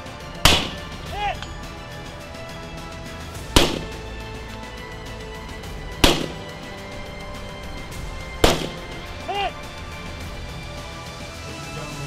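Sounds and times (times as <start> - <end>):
background music: 0.0 - 12.0
gunshots with echo: 0.4 - 1.4, 3.5 - 4.2, 5.9 - 6.9, 8.2 - 9.3.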